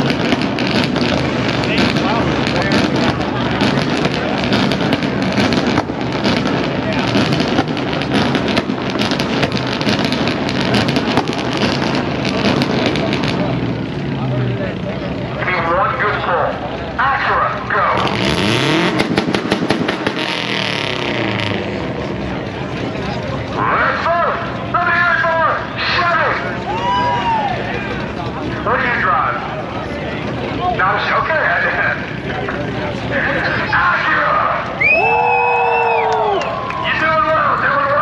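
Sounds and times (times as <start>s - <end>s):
exhaust pops: 0.0s - 16.0s, 17.6s - 26.6s
crowd voices: 0.0s - 38.0s
race car engines revving: 0.0s - 38.0s.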